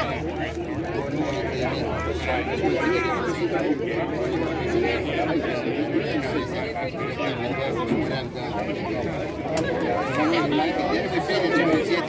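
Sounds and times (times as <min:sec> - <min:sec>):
spectators chatting: 0:00.0 - 0:12.0.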